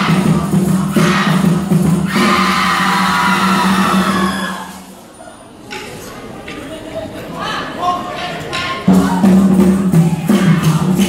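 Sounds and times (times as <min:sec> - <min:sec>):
crowd singing a cheer song: 0:00.0 - 0:04.8, 0:08.8 - 0:11.0.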